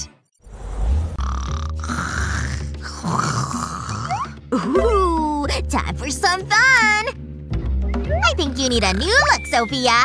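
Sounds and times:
background music: 0:00.0 - 0:10.0
person snoring: 0:01.2 - 0:04.4.

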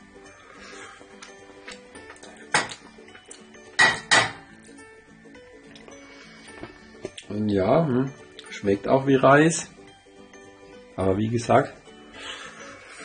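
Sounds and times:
faint background music: 0:00.0 - 0:13.0.

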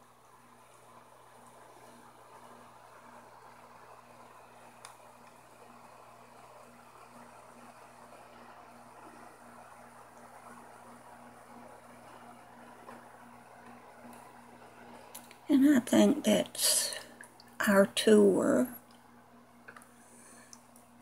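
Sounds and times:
aquarium aeration bubbling: 0:00.1 - 0:21.0.

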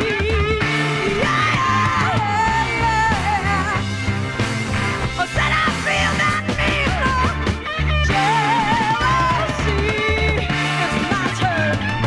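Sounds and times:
funk rock band playing: 0:00.0 - 0:12.0.

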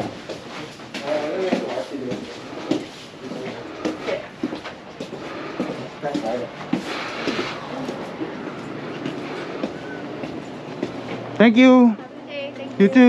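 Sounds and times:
footsteps on tiled floor: 0:00.0 - 0:11.4
faint indistinct voices: 0:00.0 - 0:13.0.

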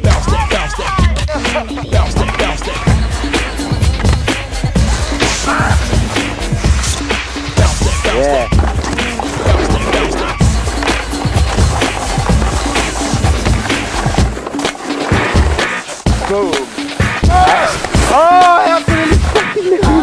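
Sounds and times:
hip-hop mashup music: 0:00.0 - 0:20.0.

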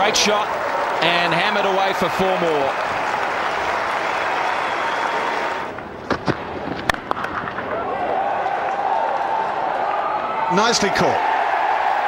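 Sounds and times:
crowd applauding: 0:00.0 - 0:05.7.

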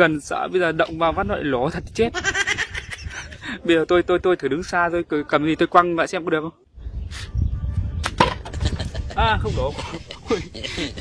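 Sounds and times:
object knocking on wood and plastic: 0:08.2 - 0:08.6.

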